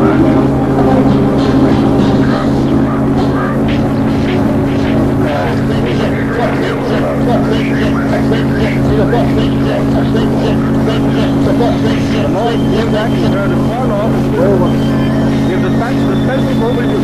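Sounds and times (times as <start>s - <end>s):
indistinct overlapping voices: 0.0s - 17.0s
low drone: 0.0s - 17.0s.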